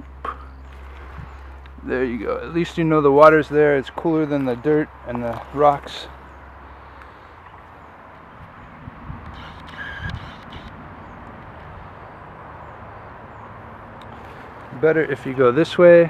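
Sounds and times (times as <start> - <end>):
faint outdoor background noise: 0.0 - 16.0.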